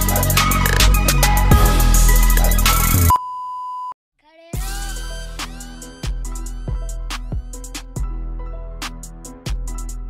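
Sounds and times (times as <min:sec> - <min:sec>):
music: 0:00.0 - 0:03.1, 0:04.4 - 0:10.0
test-tone beep: 0:03.0 - 0:04.0.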